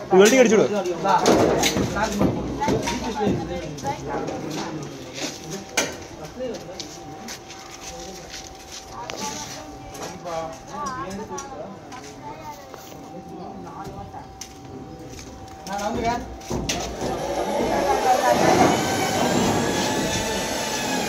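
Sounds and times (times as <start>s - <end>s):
people talking: 0.0s - 21.0s.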